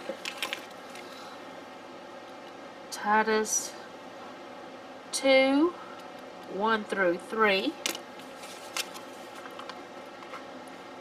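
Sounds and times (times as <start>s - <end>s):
paper and sticker sheet rustling: 8.2s - 10.4s.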